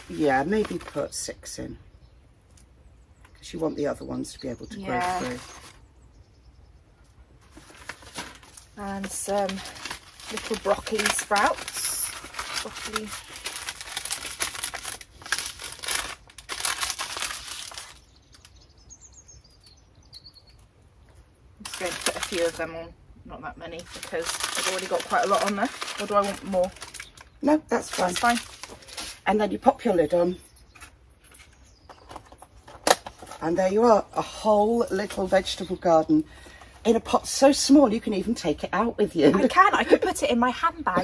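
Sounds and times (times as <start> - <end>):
paper packet crinkling: 0.0 - 1.3, 4.8 - 5.8, 7.4 - 18.6, 21.6 - 22.9, 23.7 - 35.8.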